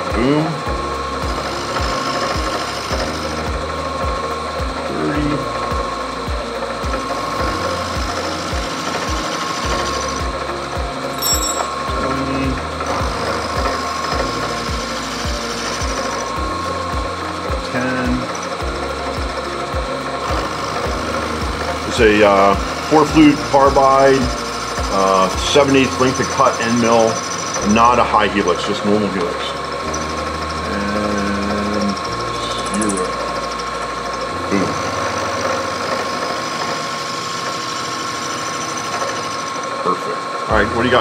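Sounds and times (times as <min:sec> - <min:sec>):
milling machine spindle whine: 0:00.0 - 0:41.0.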